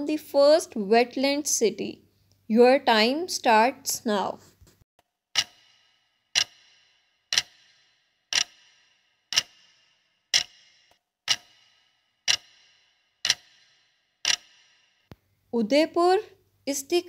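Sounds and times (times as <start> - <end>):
clock ticking: 5.3 - 15.2.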